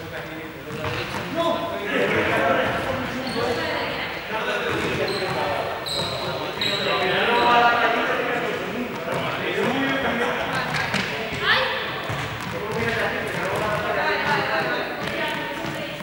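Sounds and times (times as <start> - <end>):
people talking: 0.0 - 16.0
high squeaks: 5.0 - 7.5.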